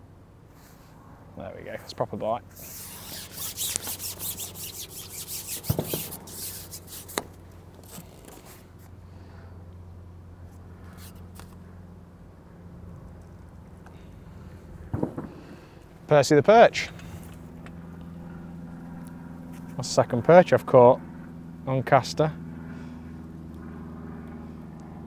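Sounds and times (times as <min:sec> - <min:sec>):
steady low hum: 0:00.0 - 0:25.0
fishing pole rubbing through hands: 0:02.5 - 0:08.9, 0:10.8 - 0:11.6.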